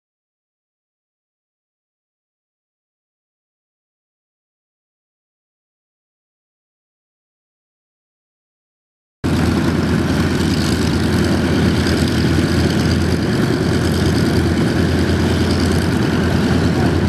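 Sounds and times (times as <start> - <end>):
twin propeller engines droning: 9.2 - 17.0.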